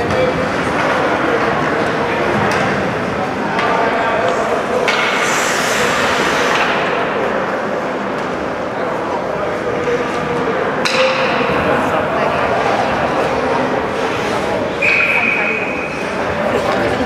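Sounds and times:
indistinct voices echoing: 0.0 - 17.0.

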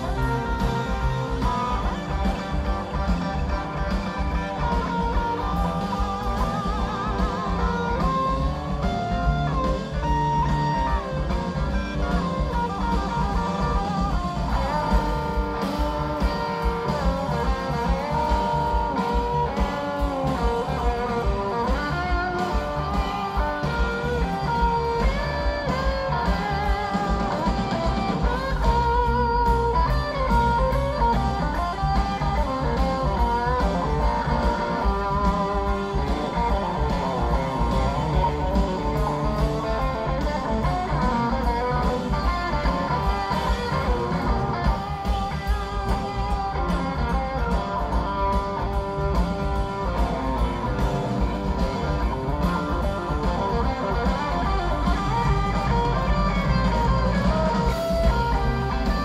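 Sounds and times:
live rock band playing: 0.0 - 59.0.

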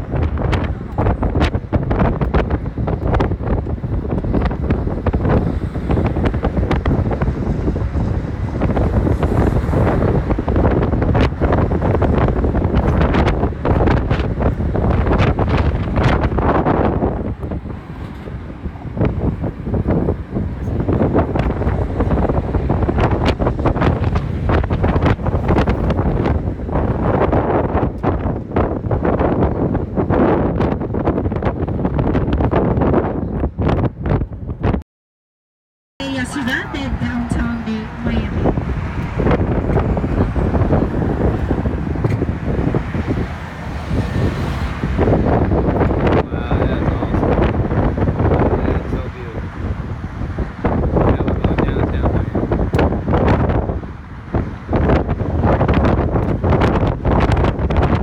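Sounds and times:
road and vehicle noise: 0.0 - 34.8, 36.0 - 58.0
wind buffeting microphone: 0.0 - 34.8, 36.0 - 58.0.

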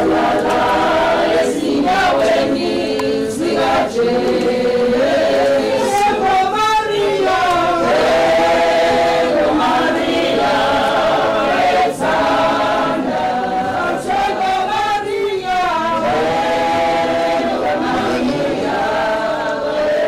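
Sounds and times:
group singing a hymn in harmony: 0.0 - 20.0.

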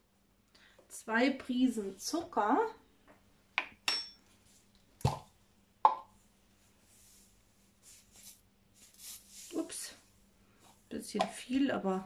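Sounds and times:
glass ringing: 3.8 - 4.2.

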